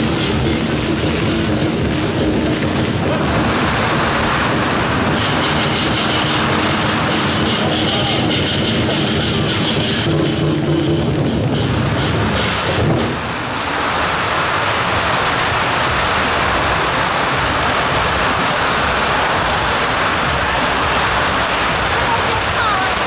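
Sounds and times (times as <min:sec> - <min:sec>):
music: 0:00.0 - 0:13.3
firecracker strings crackling: 0:00.0 - 0:23.0.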